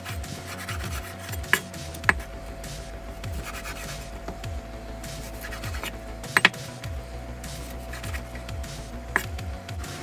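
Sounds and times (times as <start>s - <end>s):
background music with falling bass: 0.0s - 10.0s
blade knocking on board: 1.3s - 6.7s
knife cutting on wooden board: 5.2s - 6.6s, 9.2s - 9.4s.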